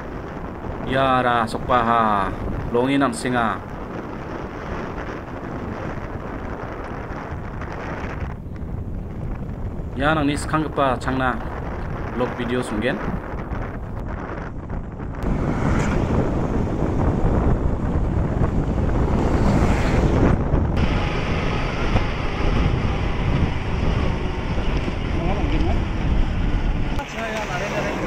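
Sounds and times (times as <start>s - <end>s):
wind buffeting microphone: 0.0s - 28.0s
motorbike engine and road noise: 2.2s - 28.0s.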